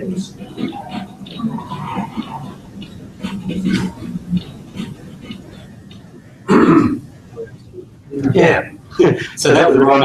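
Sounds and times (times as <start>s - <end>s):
person clearing throat: 6.5s - 7.0s.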